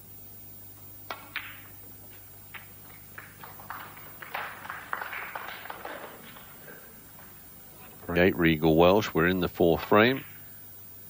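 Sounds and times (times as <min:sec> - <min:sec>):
snooker balls clicking: 0:00.8 - 0:08.0.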